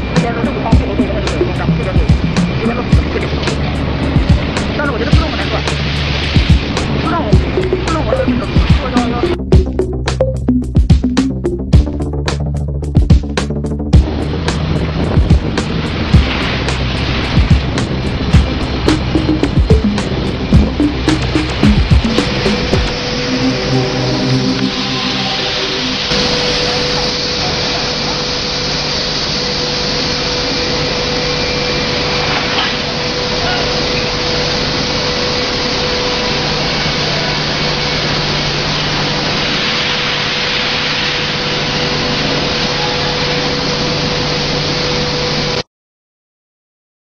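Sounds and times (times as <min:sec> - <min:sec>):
pitched tones: 0:00.0 - 0:14.1, 0:17.3 - 0:28.6
constant hum: 0:00.0 - 0:45.6
fog cannon fan rushing: 0:00.0 - 0:45.6.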